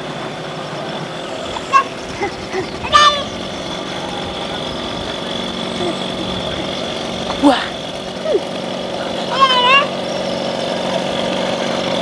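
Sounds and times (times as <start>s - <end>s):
moped engine running: 0.0s - 12.0s
voices calling out: 0.0s - 12.0s.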